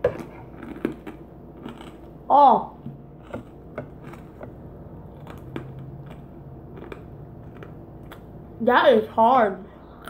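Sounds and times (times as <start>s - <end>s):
person chewing crunchy cereal: 0.0s - 2.3s, 3.1s - 8.4s.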